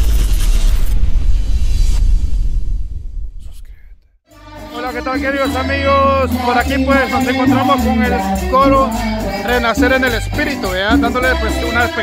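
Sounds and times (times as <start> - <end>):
deep heavy rumble: 0.0 - 4.0.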